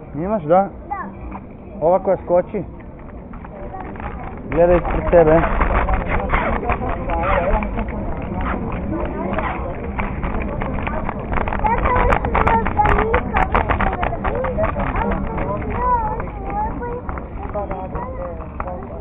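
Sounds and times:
small wheels rolling on pavement: 0:00.0 - 0:19.0
people chatting: 0:03.4 - 0:19.0.

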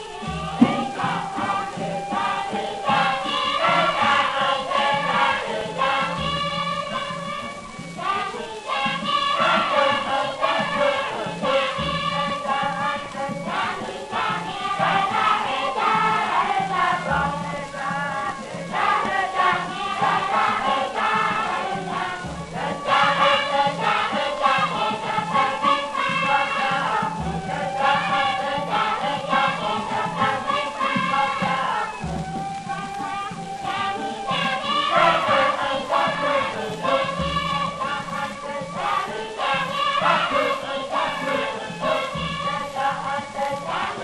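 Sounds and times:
chorus of voices singing: 0:00.0 - 0:44.0
recording hiss: 0:00.0 - 0:44.0.

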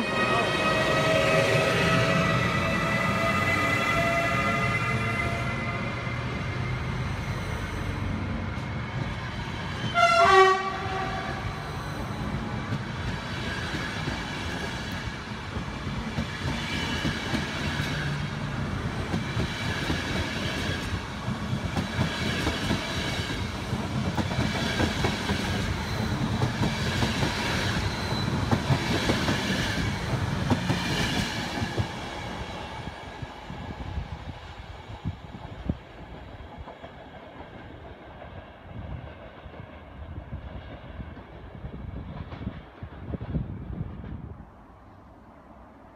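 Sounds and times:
train horn blast: 0:00.0 - 0:06.1, 0:09.9 - 0:11.6
train rolling past: 0:00.0 - 0:45.9.

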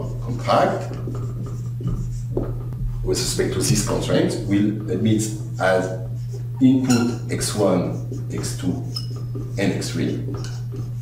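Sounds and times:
marker scratching on whiteboard: 0:00.0 - 0:02.8, 0:05.6 - 0:11.0
steady low hum: 0:00.0 - 0:11.0.

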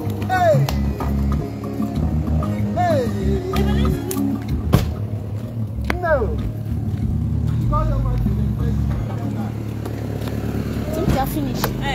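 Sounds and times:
car engine idling: 0:00.0 - 0:11.9.

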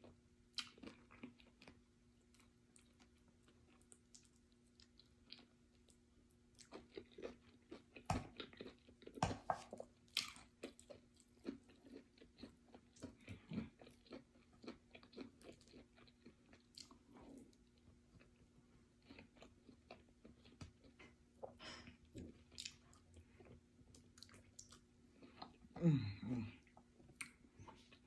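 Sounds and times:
chewing and wet mouth sounds: 0:00.0 - 0:25.8, 0:26.6 - 0:28.0.

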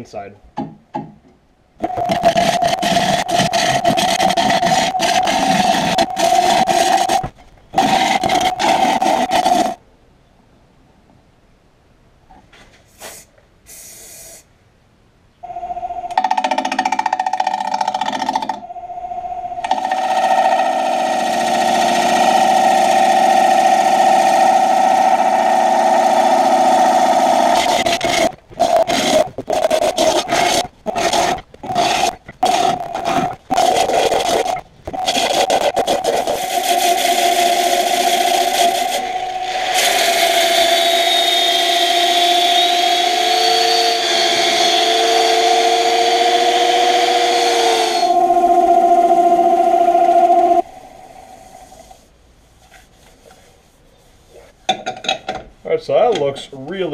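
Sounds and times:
gouge cutting wood on a lathe: 0:01.8 - 0:09.8, 0:19.7 - 0:51.6
lathe hum: 0:18.2 - 0:52.0.

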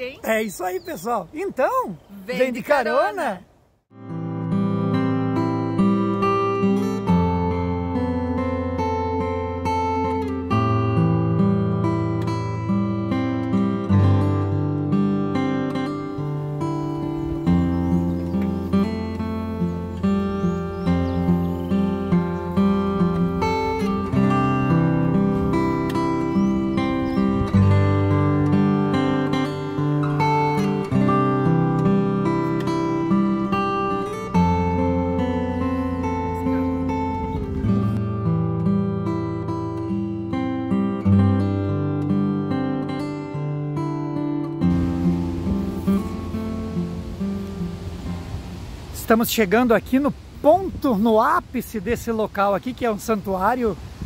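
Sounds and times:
strummed acoustic guitar: 0:03.9 - 0:48.3.

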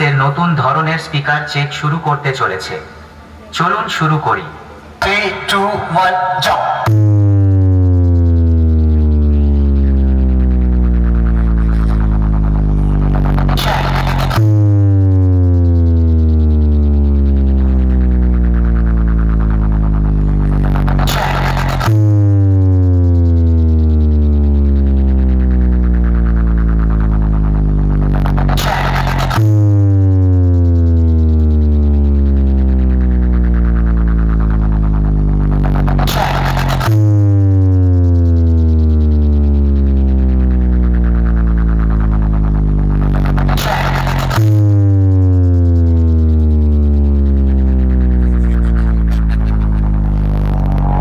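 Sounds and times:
noisy sweep: 0:00.0 - 0:31.4, 0:47.3 - 0:51.0
deep electronic bass drone: 0:00.0 - 0:51.0.

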